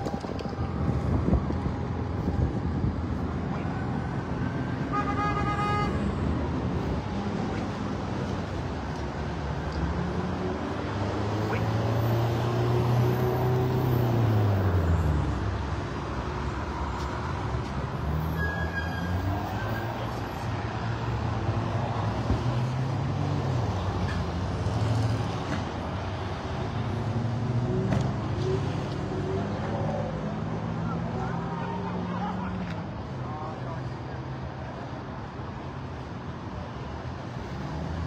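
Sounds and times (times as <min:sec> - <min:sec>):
heavy engine: 0:00.0 - 0:38.0
vehicles passing on road: 0:00.0 - 0:38.0.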